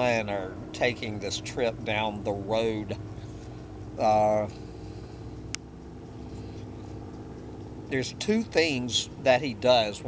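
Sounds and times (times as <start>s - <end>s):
distant airplane engine drone: 0.0s - 10.0s.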